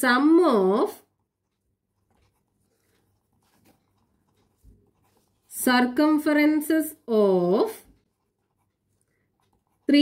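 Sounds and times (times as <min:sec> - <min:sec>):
person speaking: 0:00.0 - 0:01.2, 0:02.0 - 0:08.6, 0:09.3 - 0:10.0.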